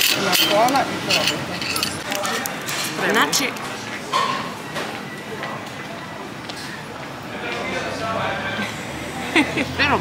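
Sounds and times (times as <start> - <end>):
street background noise with voices: 0.0 - 10.0.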